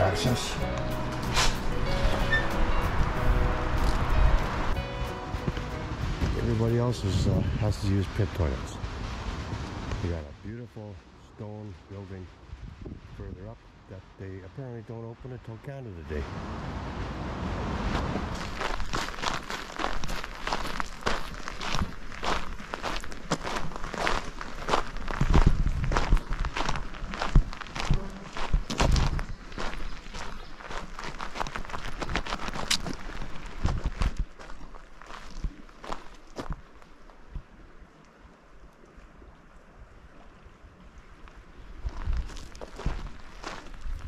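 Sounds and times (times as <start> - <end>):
wind rumble on microphone: 1.5 - 15.4, 16.1 - 19.4, 21.6 - 37.7, 39.8 - 44.0
footsteps on paving and gravel: 17.9 - 36.7, 41.9 - 44.0.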